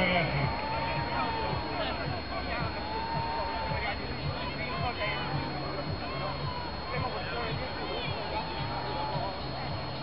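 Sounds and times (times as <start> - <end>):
faint high-pitched whine: 0.0 - 10.0
spectators shouting and cheering: 0.0 - 10.0.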